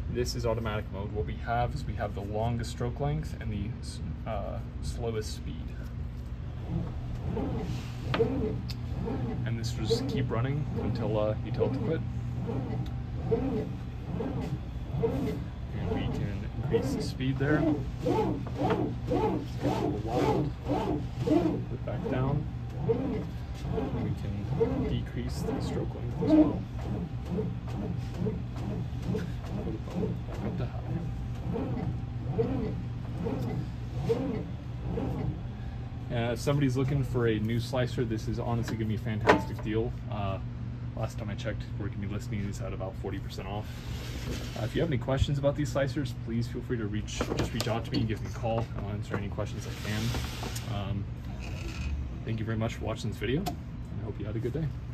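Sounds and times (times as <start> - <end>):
meat slicer motor hum: 6.5 - 36.3.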